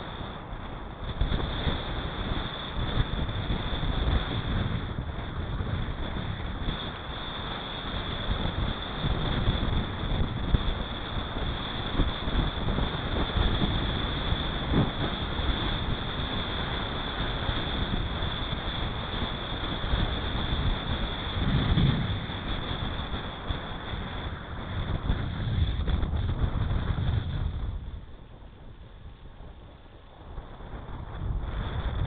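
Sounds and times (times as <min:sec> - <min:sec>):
wind rushing over microphone: 0:00.0 - 0:32.0.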